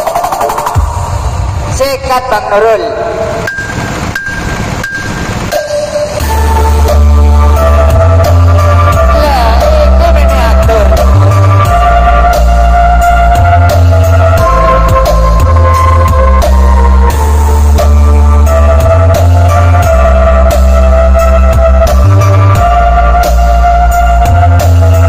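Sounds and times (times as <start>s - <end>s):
sharp beat hits: 0.0s - 1.7s, 3.0s - 7.3s
loud music through speakers: 0.0s - 1.9s, 5.6s - 25.0s
heavy bass notes: 0.0s - 25.0s.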